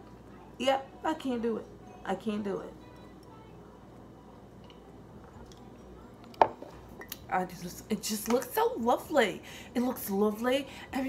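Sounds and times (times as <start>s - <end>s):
mug knocking on hard surface: 6.4s - 6.8s.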